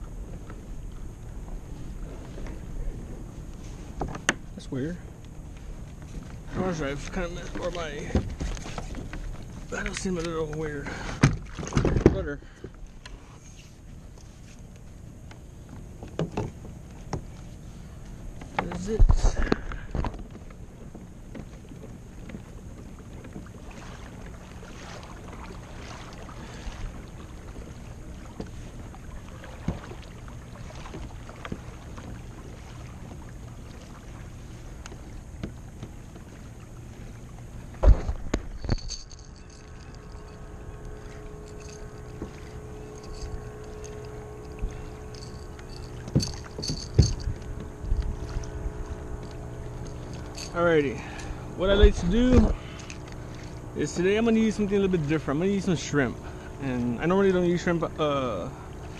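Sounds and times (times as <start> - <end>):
faint steady hum: 0.0 - 58.9
low rumble of hull and water: 0.0 - 58.9.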